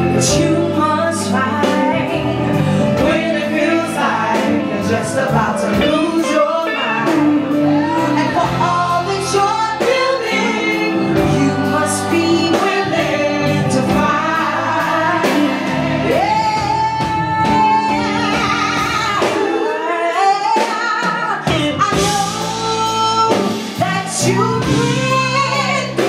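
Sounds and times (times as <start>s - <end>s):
live band music: 0.0s - 26.0s
woman singing: 0.0s - 26.0s.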